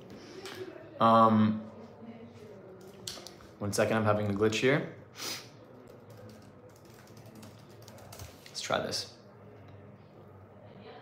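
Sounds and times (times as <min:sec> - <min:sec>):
typing on computer keyboard: 0:05.8 - 0:08.6.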